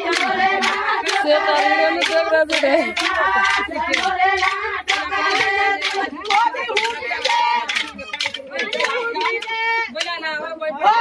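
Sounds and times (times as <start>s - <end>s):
sharp hand claps: 0.0s - 10.2s
women singing folk song: 0.0s - 11.0s.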